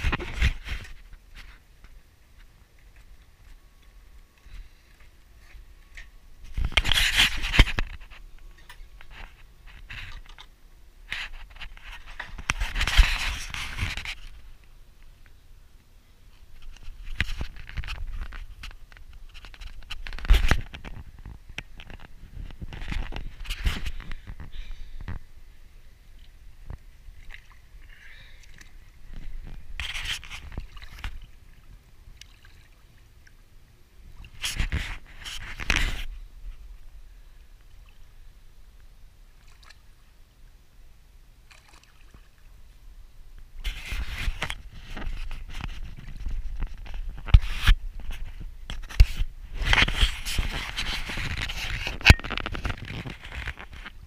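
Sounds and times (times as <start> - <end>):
microphone handling noise: 0.0 - 1.6, 6.4 - 10.4, 11.1 - 14.5, 16.5 - 25.4, 29.0 - 31.2, 34.2 - 36.8, 43.6 - 54.0.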